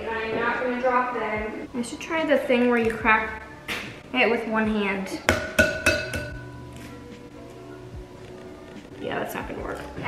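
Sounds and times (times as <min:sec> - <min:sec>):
egg knocking against bowl rim: 0:05.3 - 0:06.4.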